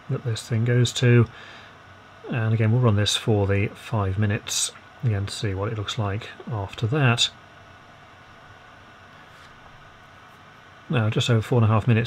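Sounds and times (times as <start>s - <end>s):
fan blowing hot air: 0.0s - 12.0s.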